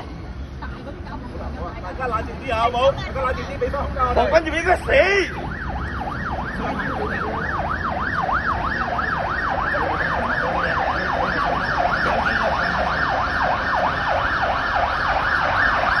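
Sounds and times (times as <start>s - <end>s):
siren yelping: 4.4s - 16.0s.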